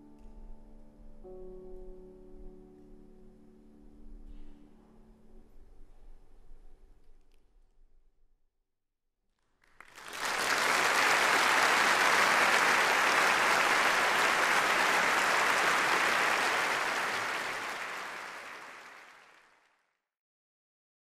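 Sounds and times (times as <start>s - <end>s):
audience applauding: 9.6s - 19.7s.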